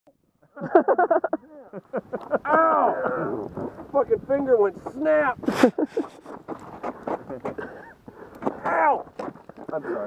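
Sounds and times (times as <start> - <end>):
cleated boots stamping on ice: 8.4 - 10.0.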